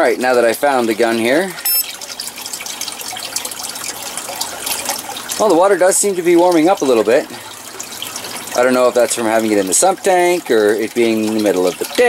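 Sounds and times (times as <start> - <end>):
water splashing from pipe: 0.0 - 12.0.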